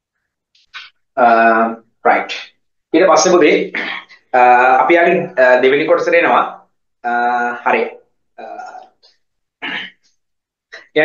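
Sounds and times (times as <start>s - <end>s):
man making throat sounds: 3.7s - 4.8s, 7.0s - 7.6s, 8.4s - 11.0s.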